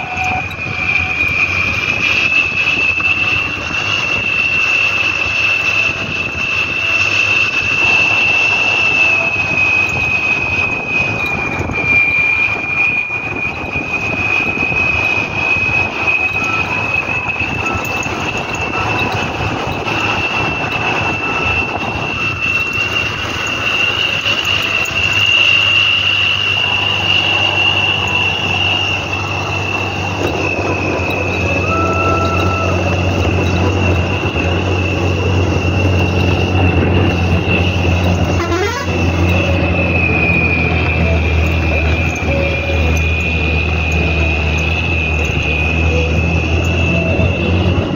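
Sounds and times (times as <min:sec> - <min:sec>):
bus engine hum: 0:00.0 - 0:47.9
high-pitched whistle: 0:00.0 - 0:47.9
road noise: 0:00.0 - 0:47.9.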